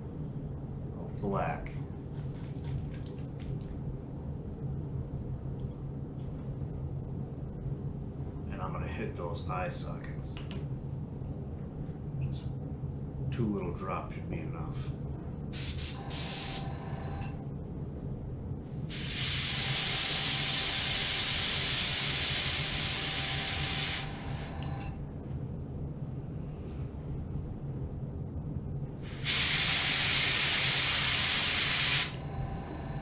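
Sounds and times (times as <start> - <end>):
airbrush spraying hiss: 15.5 - 16.7, 18.8 - 24.6, 29.0 - 32.2.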